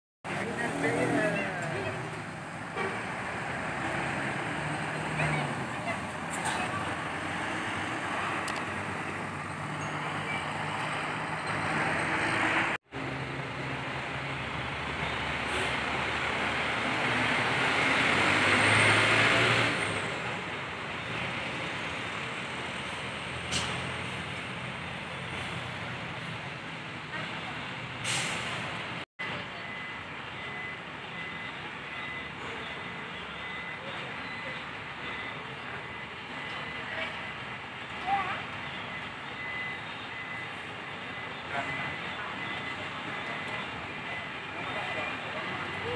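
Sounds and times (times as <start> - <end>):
city bus driving past: 0.3 - 45.9
coach engine pulling away: 0.3 - 45.9.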